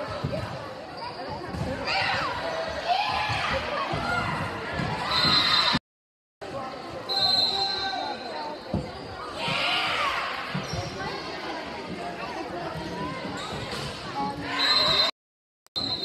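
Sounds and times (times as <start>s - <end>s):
spectators chatter: 0.0s - 5.2s, 6.4s - 15.1s
short high whistle: 7.1s - 8.5s, 15.8s - 16.0s.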